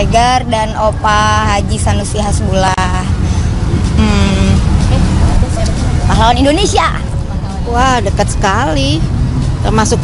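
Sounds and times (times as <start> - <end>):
loud low rumble: 2.2 - 6.3.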